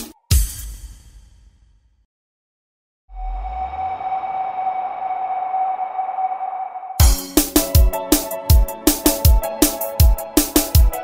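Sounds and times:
steady electronic tone: 3.1 - 7.2.

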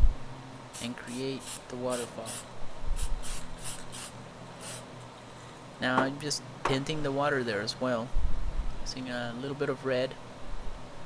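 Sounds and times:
spray paint can hissing: 0.7 - 4.9.

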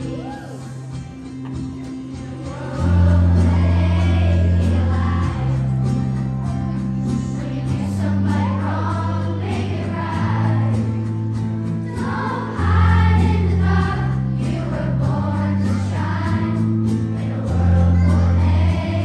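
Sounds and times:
children's choir singing: 1.6 - 19.0.

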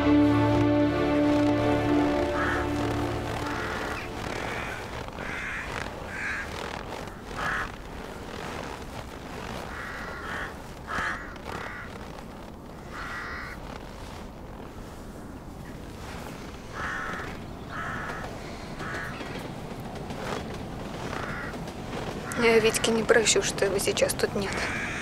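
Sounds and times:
crows cawing: 1.2 - 13.8, 16.7 - 23.1, 24.4 - 25.0.

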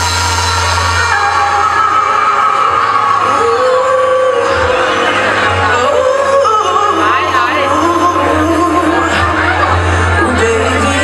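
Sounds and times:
loud backing music: 0.0 - 11.0
person singing long notes: 0.0 - 11.0
steady bass: 0.0 - 11.0.

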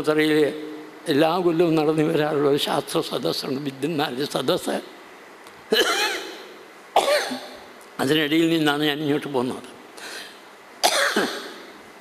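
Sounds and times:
man coughing: 5.7 - 7.6, 10.8 - 11.7.

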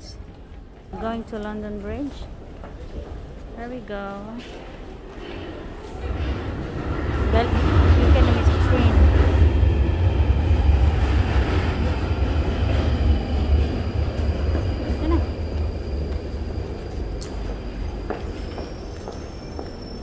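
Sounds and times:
underground train rumbling: 0.0 - 20.0.

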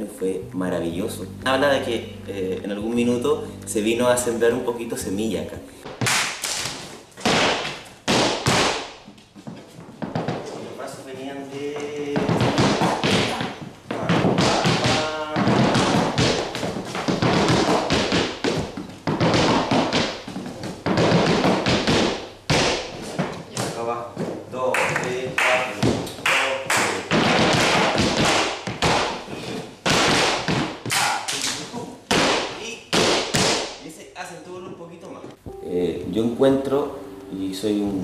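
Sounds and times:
person calling out: 0.4 - 5.0
shoes tapping and stamping on wood: 5.8 - 10.6, 11.7 - 25.2, 27.1 - 31.2.

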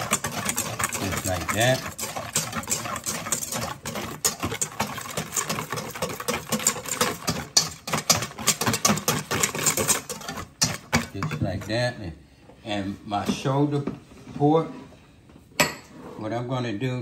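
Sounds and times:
liquid splashing: 0.0 - 11.7
whisk clattering in metal bowl: 0.0 - 12.0.

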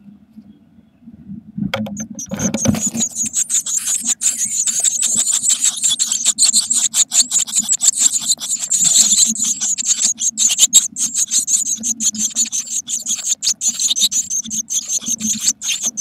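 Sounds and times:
nestlings begging calls: 2.0 - 16.0.

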